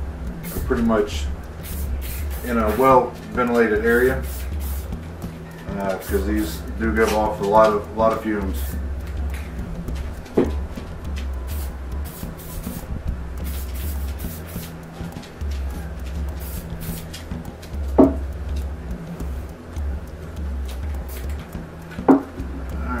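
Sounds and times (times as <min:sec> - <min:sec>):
background music with bass: 0:00.0 - 0:23.0
spray paint can hissing: 0:00.3 - 0:18.2, 0:20.6 - 0:22.4
sharp knocks: 0:17.3 - 0:18.7, 0:20.7 - 0:22.7.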